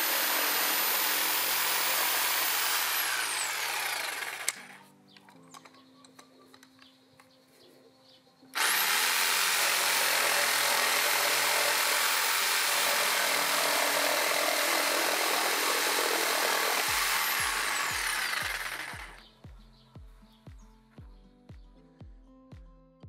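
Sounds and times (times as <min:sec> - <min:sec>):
jigsaw cutting wood: 0:00.0 - 0:04.8, 0:08.6 - 0:19.2.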